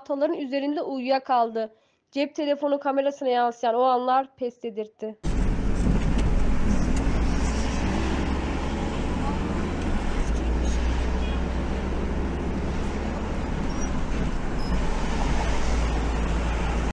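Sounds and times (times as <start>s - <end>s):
car engine and tyre rumble: 5.2s - 16.9s
traffic noise: 5.2s - 16.9s.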